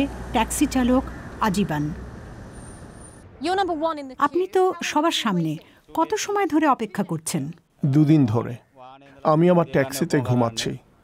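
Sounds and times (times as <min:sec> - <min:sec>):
faint street traffic: 0:00.0 - 0:11.0
person speaking: 0:03.4 - 0:10.8.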